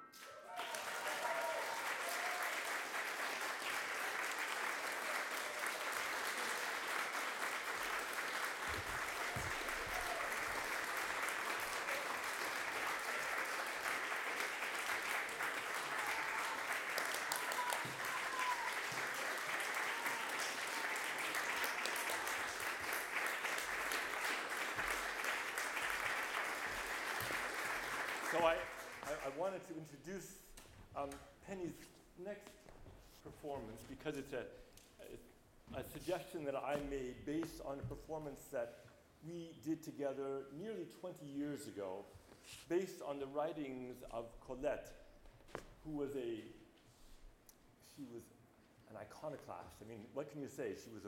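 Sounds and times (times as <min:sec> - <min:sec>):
audience applauding: 0:00.1 - 0:29.5.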